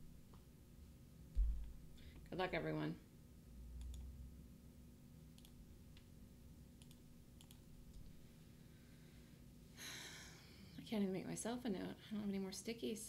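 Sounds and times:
computer clicks: 0:03.8 - 0:04.1, 0:05.4 - 0:05.6, 0:06.8 - 0:08.1.

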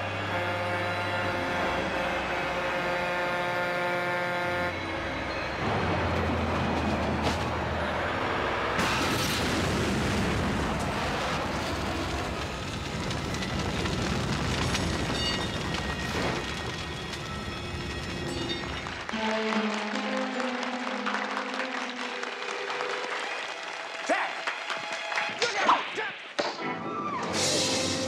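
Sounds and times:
truck exploding: 0:05.6 - 0:18.6, 0:27.3 - 0:28.0
burning wreckage: 0:05.6 - 0:19.0
hands clapping: 0:18.7 - 0:26.6.

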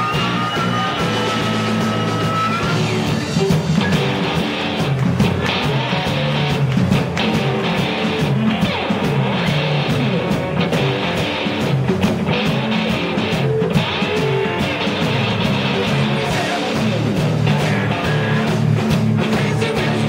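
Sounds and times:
drums: 0:00.0 - 0:20.0
electric bass line: 0:00.0 - 0:20.0
electric guitars: 0:00.0 - 0:20.0.

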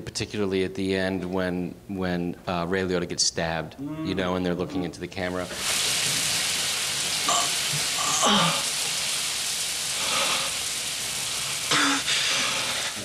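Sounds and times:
man groaning: 0:03.8 - 0:04.8
man gasping: 0:11.7 - 0:13.0.

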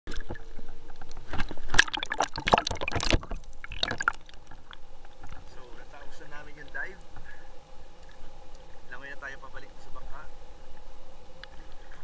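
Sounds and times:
sea water splashing: 0:01.6 - 0:04.8
water lapping: 0:01.8 - 0:04.8.

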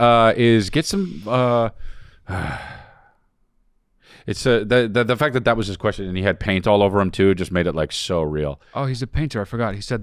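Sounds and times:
man sighing into a microphone: 0:01.2 - 0:03.3.

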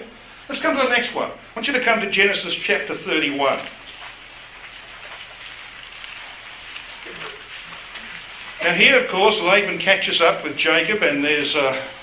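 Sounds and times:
pages being turned: 0:03.5 - 0:09.0.

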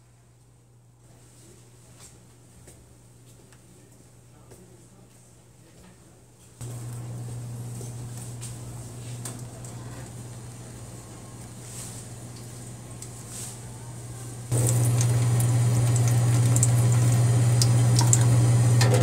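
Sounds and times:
drinking fountain humming: 0:06.6 - 0:19.0
water splashing into steel basin: 0:14.5 - 0:19.0.

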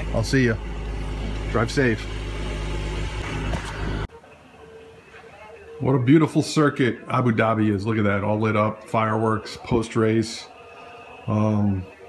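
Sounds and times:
engine idling: 0:00.0 - 0:04.1.

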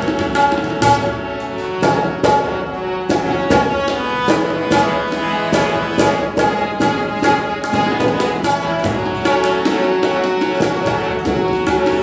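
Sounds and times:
harmonium chords: 0:00.0 - 0:12.0
tabla strokes: 0:00.0 - 0:12.0.

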